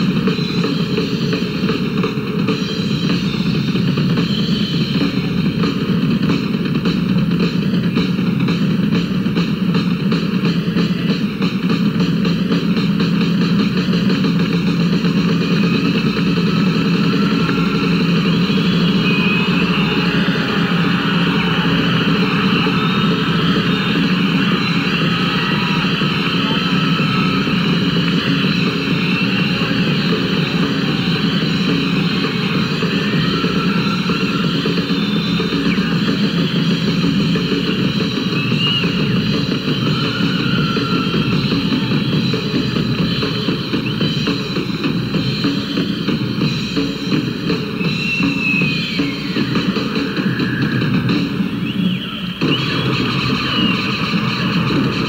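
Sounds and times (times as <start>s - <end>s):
drum roll with cymbals: 0.0s - 55.0s.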